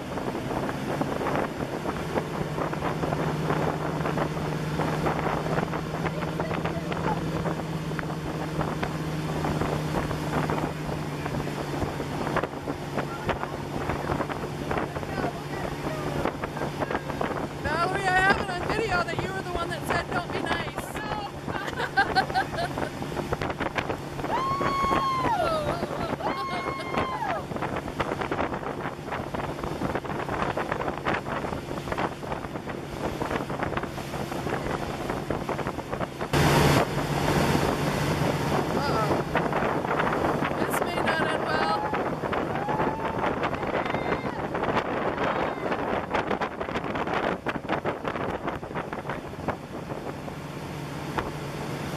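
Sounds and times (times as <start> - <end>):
motorboat engine running: 0.0 - 51.9
rushing wake water: 0.0 - 51.9
wind on microphone: 0.0 - 51.9
people calling out and laughing: 19.7 - 23.0, 24.2 - 27.6, 40.7 - 46.0.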